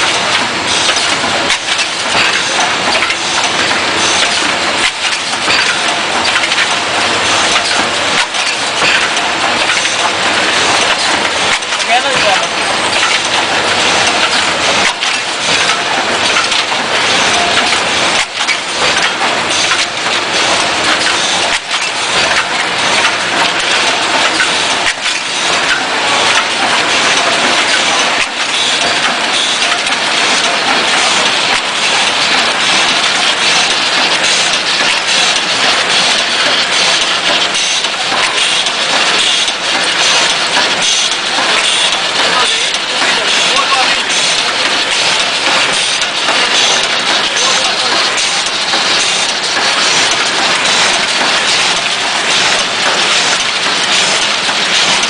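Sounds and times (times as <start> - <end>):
packing machinery clattering: 0.0 - 55.0.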